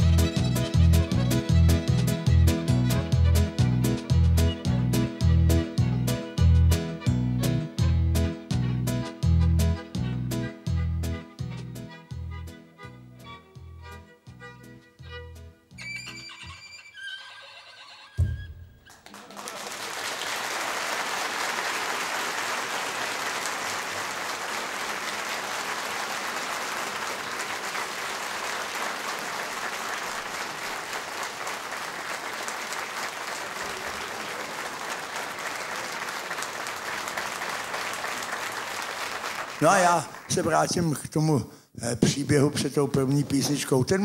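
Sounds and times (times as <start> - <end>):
fiddle tune with guitar and bass: 0.0 - 18.6
audience applauding: 18.8 - 41.0.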